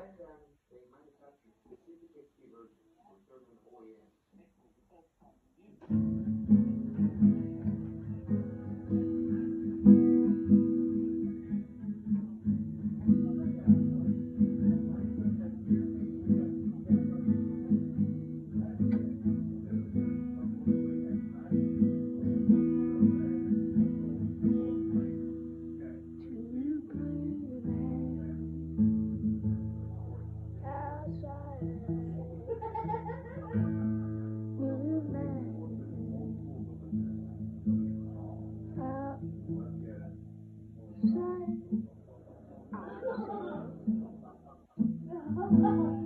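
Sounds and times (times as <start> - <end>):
acoustic guitar strumming: 5.9 - 32.4, 33.2 - 42.0, 42.7 - 46.0.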